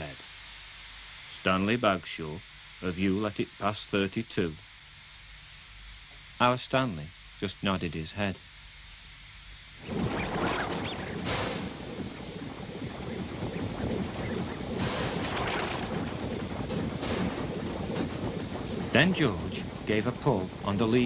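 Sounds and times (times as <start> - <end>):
factory machine rumbling: 9.8 - 21.0
surges of hiss: 10.7 - 12.7, 14.8 - 21.0.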